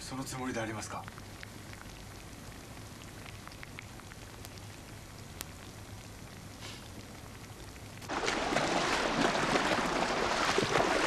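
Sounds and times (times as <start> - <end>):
low steady hum: 0.0 - 11.0
steady rain falling: 0.0 - 11.0.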